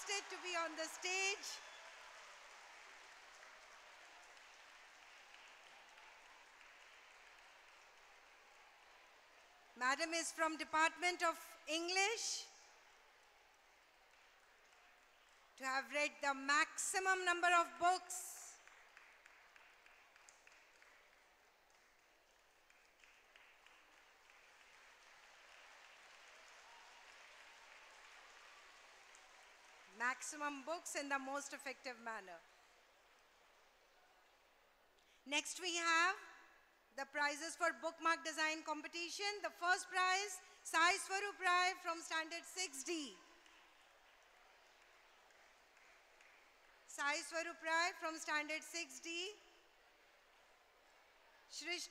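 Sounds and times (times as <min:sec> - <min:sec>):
audience applause: 0:00.0 - 0:09.8, 0:12.7 - 0:15.6, 0:18.6 - 0:30.0, 0:43.4 - 0:46.9.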